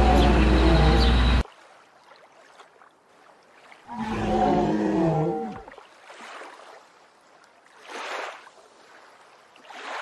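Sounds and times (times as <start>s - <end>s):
hippopotamus call: 0.0s - 1.4s.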